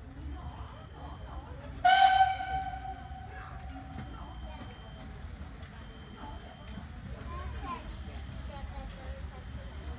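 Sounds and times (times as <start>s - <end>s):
steam locomotive whistle: 1.8s - 3.4s.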